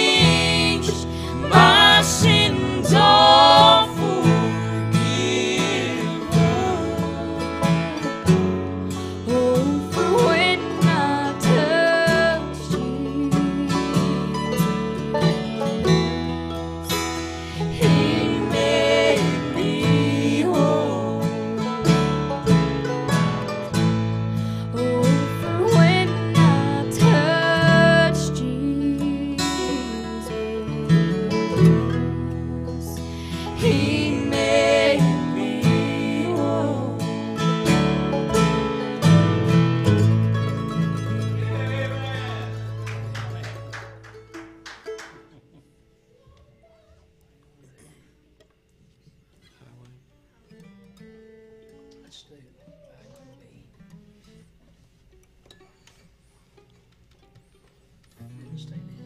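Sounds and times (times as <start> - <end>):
woman singing: 0.0 - 14.6, 17.6 - 21.8, 24.7 - 37.8
strummed acoustic guitar: 0.0 - 45.6, 50.5 - 52.2
mandolin: 0.0 - 45.7.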